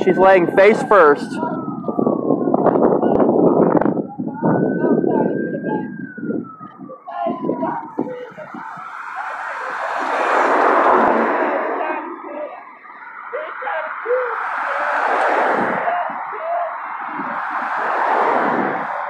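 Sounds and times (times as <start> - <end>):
cars passing on a road: 0.0 - 19.0.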